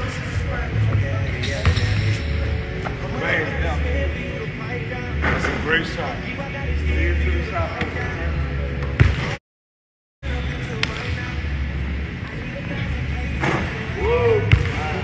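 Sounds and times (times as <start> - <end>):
background music with deep bass: 0.0 - 9.3.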